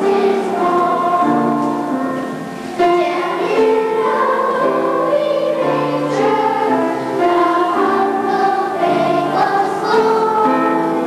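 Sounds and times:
children's choir singing: 0:00.0 - 0:11.0.

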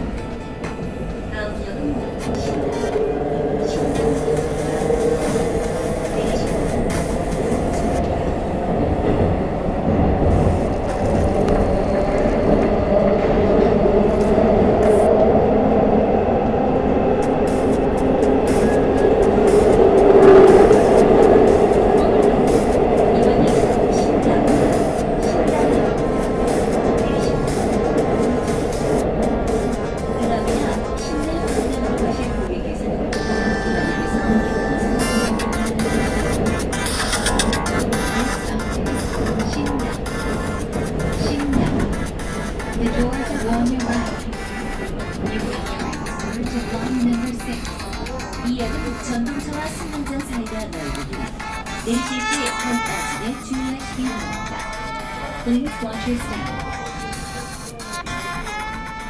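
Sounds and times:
steady tones: 0:00.0 - 0:59.0
subway car wheels rumbling: 0:00.0 - 0:59.0.

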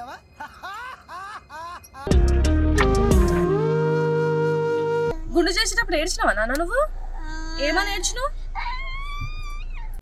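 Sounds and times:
toddler whining: 0:06.9 - 0:10.0.

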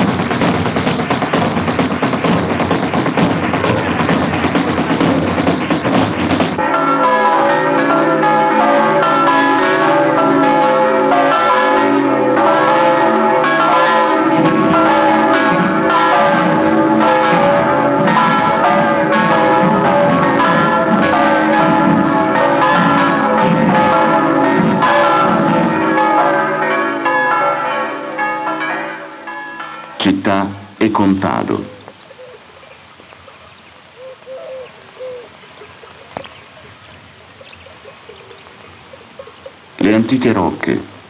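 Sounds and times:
church bells pealing: 0:00.0 - 0:32.6, 0:34.0 - 0:41.0.

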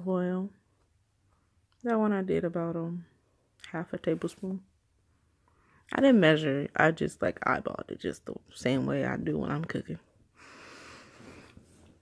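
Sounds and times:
faint breath: 0:05.2 - 0:05.8, 0:10.4 - 0:11.9.

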